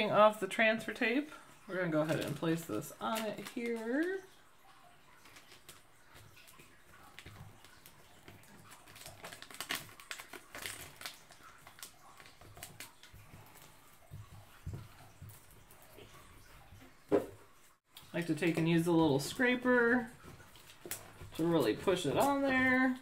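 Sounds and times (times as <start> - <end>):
plastic film crinkling: 2.0 - 4.3, 5.2 - 16.1, 18.0 - 23.0.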